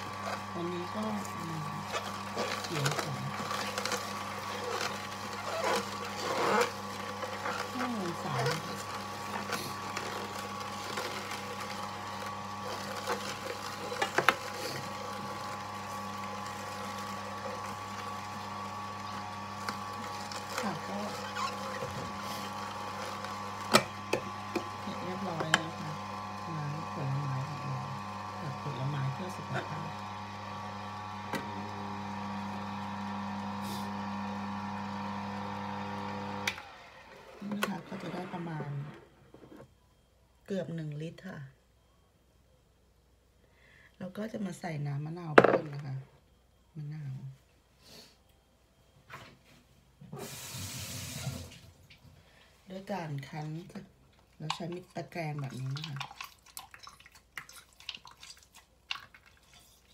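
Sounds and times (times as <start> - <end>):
electric juicer motor humming: 0.0 - 39.7, 44.5 - 46.0, 50.0 - 56.1
juicer knocks and clacks: 0.1 - 26.3.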